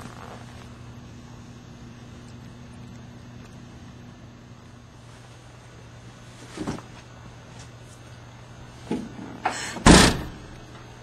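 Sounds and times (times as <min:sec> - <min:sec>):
car trunk lid slamming: 0:09.8 - 0:10.5.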